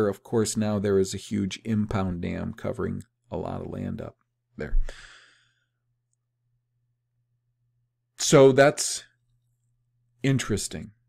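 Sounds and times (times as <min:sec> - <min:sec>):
man exhaling breath: 0:04.8 - 0:05.7.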